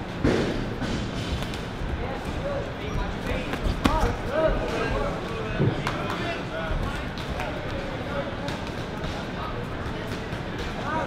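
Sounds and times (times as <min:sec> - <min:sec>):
spectators talking: 0:01.9 - 0:11.0.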